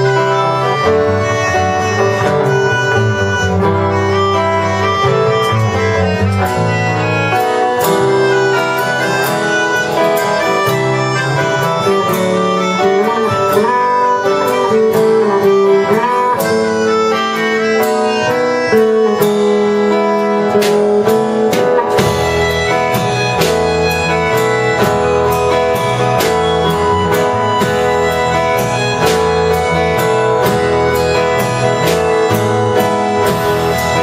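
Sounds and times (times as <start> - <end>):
drums: 0.0 - 34.0
electric bass: 0.0 - 34.0
melody of long held notes: 0.0 - 34.0.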